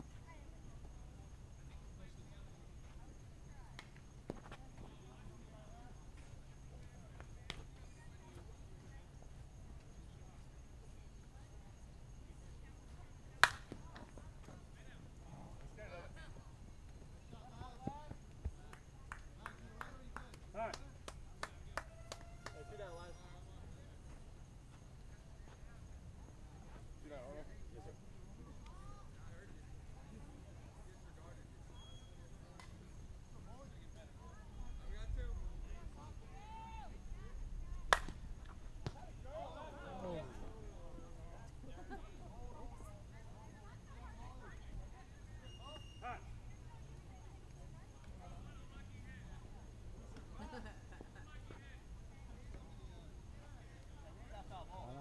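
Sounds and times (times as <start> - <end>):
bat cracking against ball: 13.4 - 13.7, 37.9 - 39.0
bat striking ball: 37.9 - 38.2.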